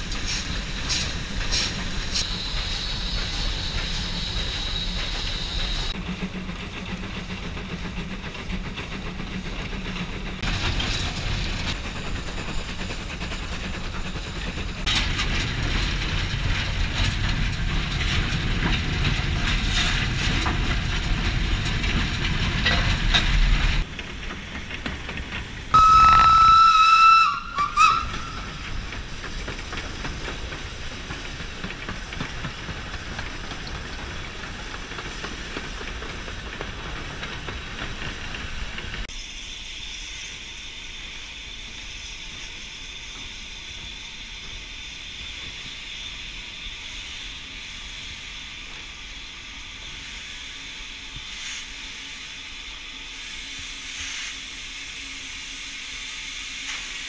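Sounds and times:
steam locomotive rumbling and hissing: 0:00.0 - 0:57.0
steam whistle blast: 0:25.8 - 0:28.5.

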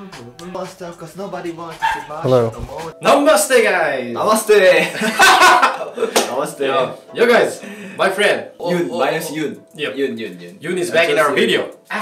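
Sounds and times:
men's voices greeting: 0:00.0 - 0:12.0
sharp hand clap: 0:06.1 - 0:06.5.

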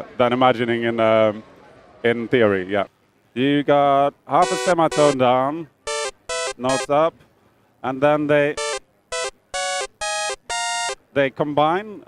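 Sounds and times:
buzzy synthesizer notes: 0:04.4 - 0:05.2, 0:05.9 - 0:06.9, 0:08.6 - 0:11.0.

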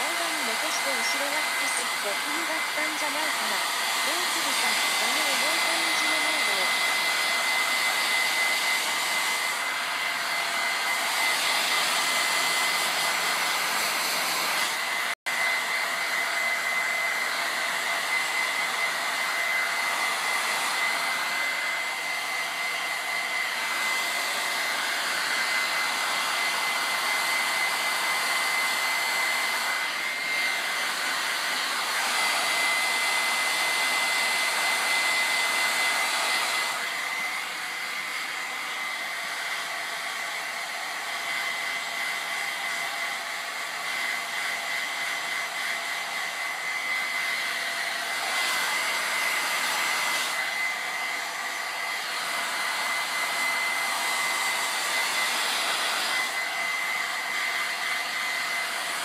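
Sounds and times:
hair dryer blowing with high whine: 0:00.0 - 0:59.0.

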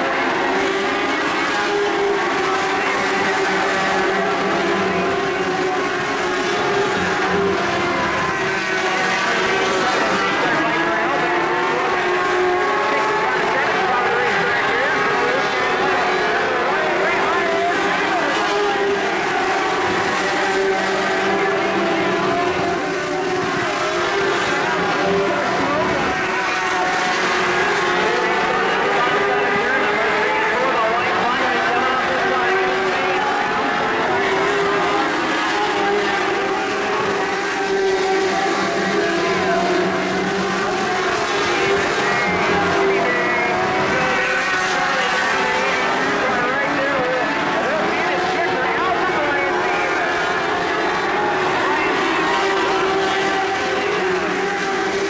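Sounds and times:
race car engines running hard: 0:00.0 - 0:55.0.

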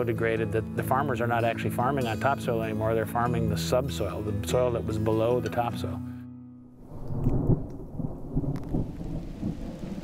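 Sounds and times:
thunder rumbling: 0:06.8 - 0:10.0
rain falling: 0:07.0 - 0:10.0.

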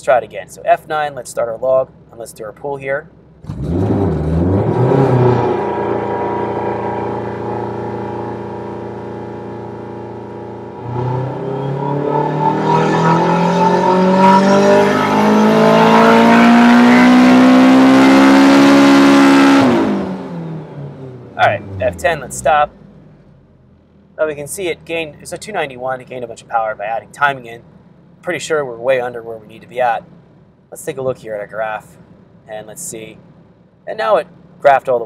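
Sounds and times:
turbocharged car engine revving: 0:03.4 - 0:25.9.

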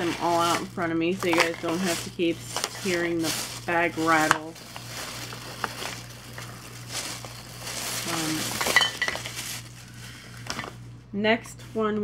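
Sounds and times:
plastic tubes clinking: 0:00.0 - 0:09.7
bag rustling: 0:00.0 - 0:10.8.

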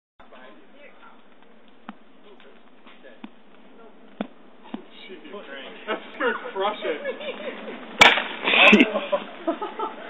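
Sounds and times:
steady outdoor hiss: 0:00.2 - 0:10.0.

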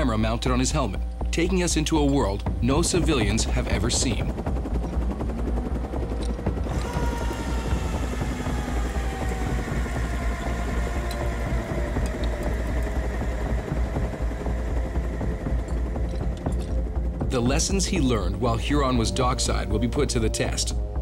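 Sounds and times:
helicopter rotor rumble: 0:00.0 - 0:21.0
helicopter turbine whine: 0:00.0 - 0:21.0.

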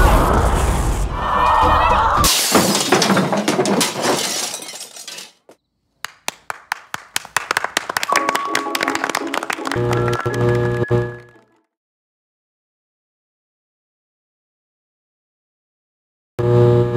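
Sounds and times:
loud crash: 0:02.2 - 0:05.3
trailer music: 0:08.1 - 0:11.6.

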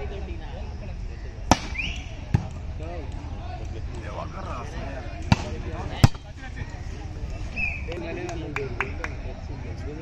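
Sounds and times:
people chattering: 0:00.0 - 0:10.0
volleyball being struck by hand: 0:01.5 - 0:02.6, 0:05.2 - 0:06.3.

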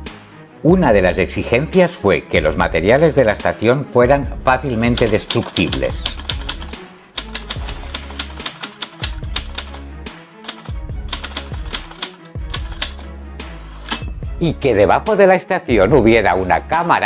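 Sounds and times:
background music with bass line: 0:00.0 - 0:17.0
typewriter keys clacking: 0:04.9 - 0:09.8, 0:10.4 - 0:13.0.

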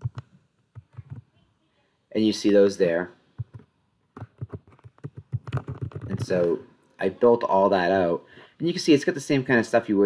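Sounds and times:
typing on computer keyboard: 0:00.0 - 0:01.2, 0:03.4 - 0:03.6, 0:04.2 - 0:06.4.

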